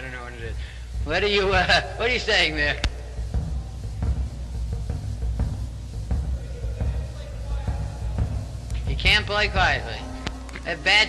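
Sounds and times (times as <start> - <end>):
drum strikes: 0.0 - 11.0
steady low rumble: 0.0 - 11.0.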